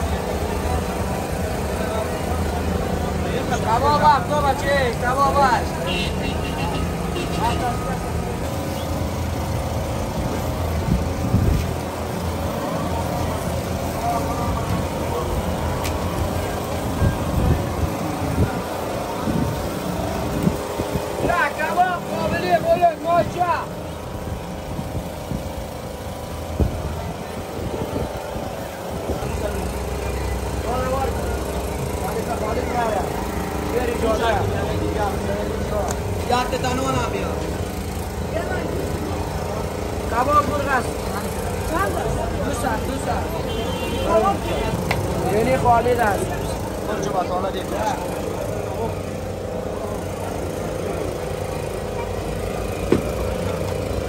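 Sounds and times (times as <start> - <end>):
traffic rumble: 0.0 - 54.0
voices of passers-by: 0.0 - 54.0.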